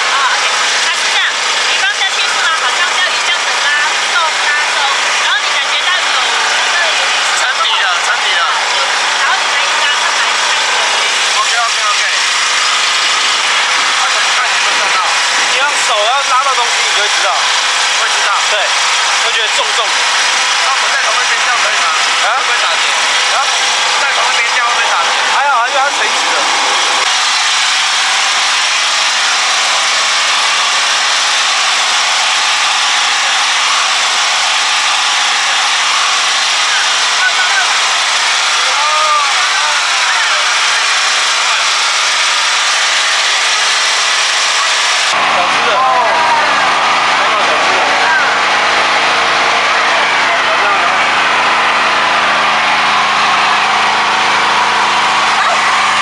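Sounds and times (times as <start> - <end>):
faint voices talking: 0.0 - 27.2, 28.0 - 56.0
generator engine droning: 0.0 - 56.0.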